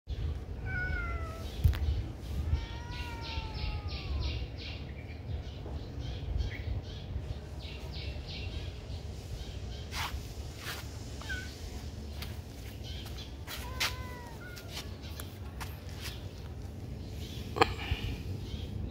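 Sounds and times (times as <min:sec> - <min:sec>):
kitten meowing: 0:00.6 - 0:01.6, 0:02.4 - 0:04.4, 0:13.5 - 0:14.8.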